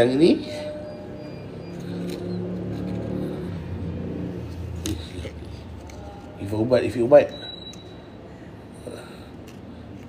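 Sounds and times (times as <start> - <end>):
vehicle engine running: 0.6 - 6.0.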